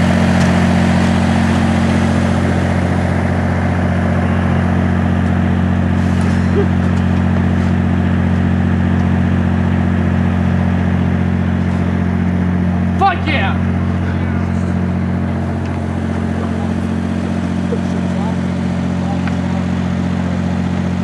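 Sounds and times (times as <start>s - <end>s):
machine humming: 0.0s - 21.0s.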